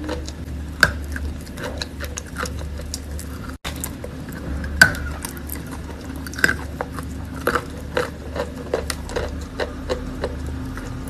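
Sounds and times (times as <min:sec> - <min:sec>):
steady low hum: 0:00.0 - 0:11.0
wet chewing crunches: 0:00.0 - 0:11.0.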